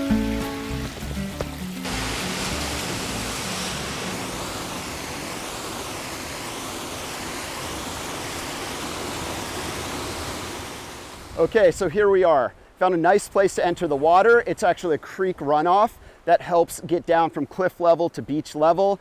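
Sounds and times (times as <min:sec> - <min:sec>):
background music: 0:00.0 - 0:04.0
ocean surf over cobbles: 0:00.0 - 0:17.4.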